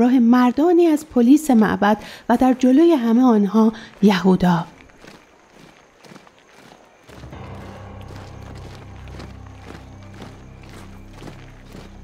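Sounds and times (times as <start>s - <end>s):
soldiers marching footsteps: 2.4s - 12.0s.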